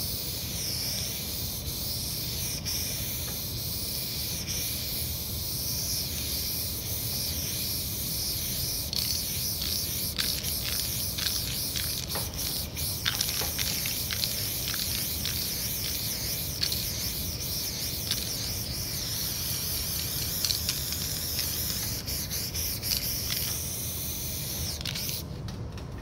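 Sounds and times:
spray paint can hissing: 0.0 - 25.2.

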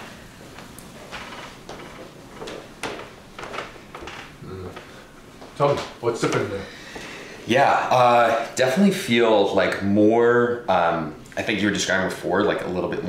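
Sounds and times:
footsteps in a room: 0.0 - 7.3.

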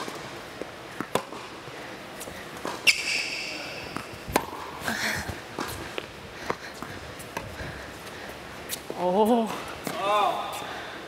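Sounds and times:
racket striking tennis ball: 1.0 - 1.5, 2.6 - 4.7
tennis ball bouncing: 1.0 - 1.6, 2.6 - 3.2, 3.8 - 7.6
shoe squeaking on court: 2.6 - 4.2.

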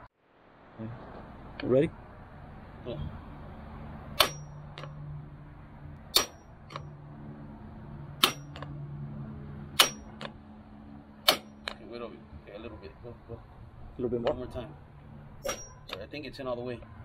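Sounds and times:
hammer striking metal seal driver: 4.2 - 4.9, 6.1 - 6.8, 8.2 - 8.7, 9.8 - 10.3, 11.2 - 11.8, 15.4 - 16.1.

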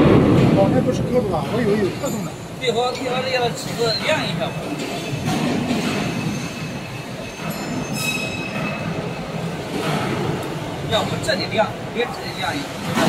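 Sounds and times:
rumbling workshop machinery: 0.0 - 13.0.

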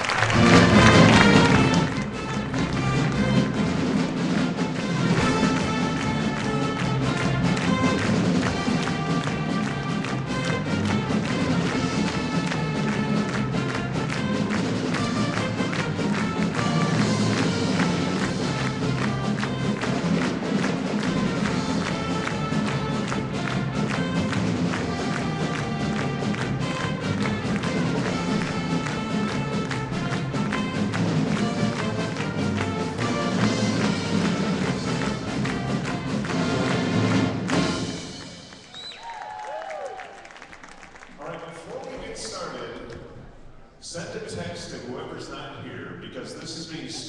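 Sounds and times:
pep band playing upbeat tune: 0.0 - 38.8.

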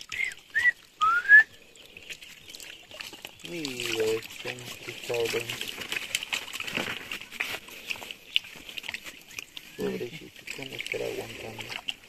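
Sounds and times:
shallow water splashing: 0.0 - 12.0
voices: 3.4 - 5.7, 9.7 - 11.8.

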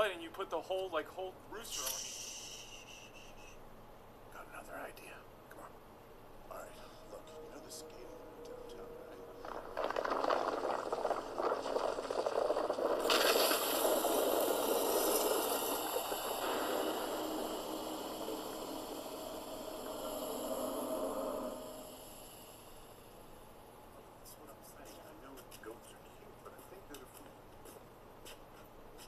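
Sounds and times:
loud hissing rush: 1.6 - 3.6, 9.4 - 25.3
rumbling build-up: 6.3 - 24.2.

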